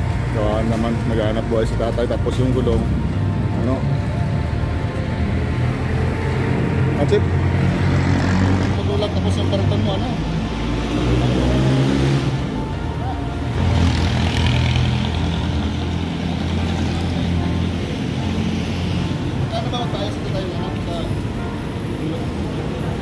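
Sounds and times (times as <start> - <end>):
street traffic: 0.0 - 23.0
vehicle engine running nearby: 0.0 - 23.0.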